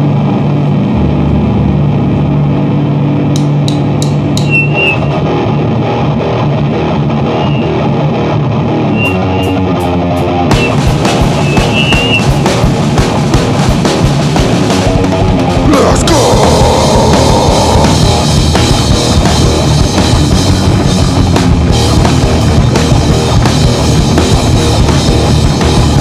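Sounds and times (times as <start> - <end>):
live rock band playing: 0.0 - 26.0
drum kit: 3.3 - 8.3, 8.9 - 26.0.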